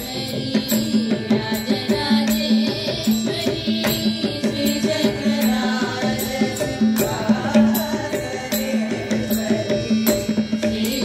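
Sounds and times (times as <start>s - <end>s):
group singing devotional song: 0.0s - 11.0s.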